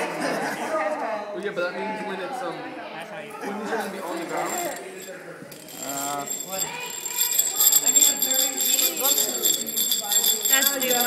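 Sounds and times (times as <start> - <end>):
metal gears whirring: 4.1 - 11.0.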